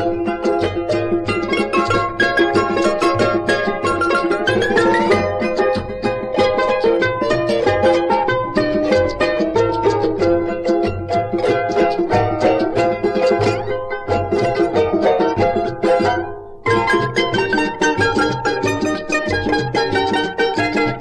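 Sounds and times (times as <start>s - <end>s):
bass part: 0.0s - 20.1s
charangos plucked and strummed: 0.0s - 21.0s.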